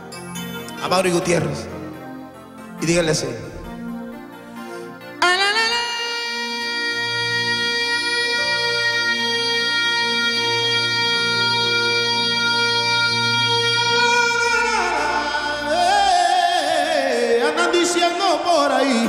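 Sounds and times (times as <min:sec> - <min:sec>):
man singing long high note: 0:05.2 - 0:19.0.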